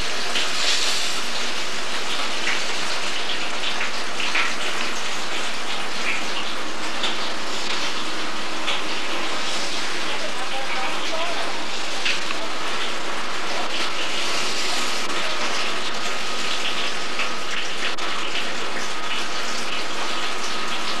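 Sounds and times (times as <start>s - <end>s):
rain hissing: 0.0s - 21.0s.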